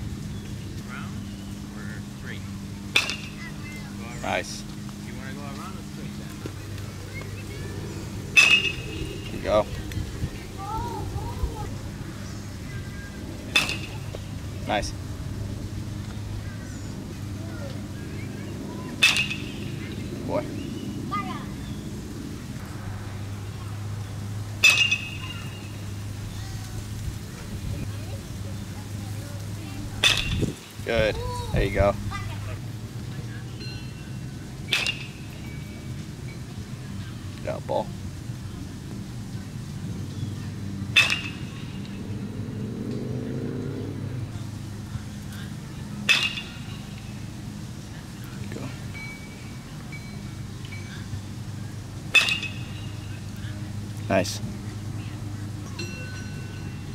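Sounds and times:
steady low hum: 0.0 - 56.9
metal bat hitting baseball: 2.9 - 3.6, 8.3 - 9.4, 13.5 - 14.3, 19.0 - 20.0, 24.6 - 25.9, 30.0 - 30.6, 34.7 - 35.7, 40.9 - 42.0, 46.0 - 47.0, 52.1 - 53.1
sharp metallic ping: 8.4 - 9.4, 24.6 - 25.7.

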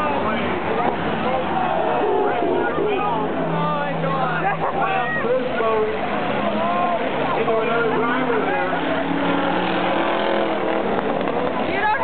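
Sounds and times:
race car engines: 0.0 - 12.0
spectators chattering: 0.0 - 12.0.

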